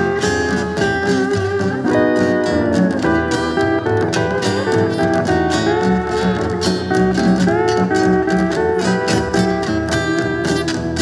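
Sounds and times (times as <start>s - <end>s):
bass: 0.0s - 11.0s
electric lap steel guitar solo: 0.0s - 11.0s
strummed rhythm guitar: 0.0s - 11.0s.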